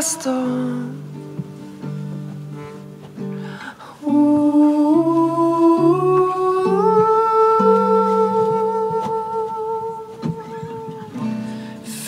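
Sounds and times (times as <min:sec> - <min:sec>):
plucked acoustic guitar: 0:00.0 - 0:12.0
person humming: 0:04.0 - 0:12.0.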